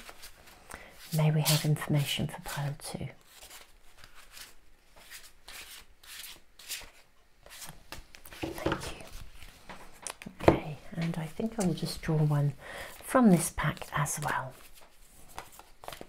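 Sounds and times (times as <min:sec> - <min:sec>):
cards shuffling: 0:00.0 - 0:01.7, 0:03.3 - 0:10.4, 0:13.7 - 0:16.0.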